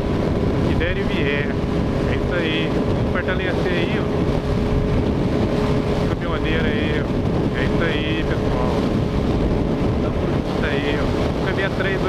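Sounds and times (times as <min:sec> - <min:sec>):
motorcycle engine humming: 0:00.0 - 0:12.0
wind rushing over microphone: 0:00.0 - 0:12.0.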